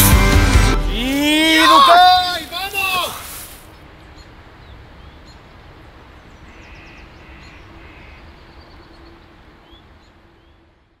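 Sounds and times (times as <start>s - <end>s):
birds calling: 0.9s - 11.0s.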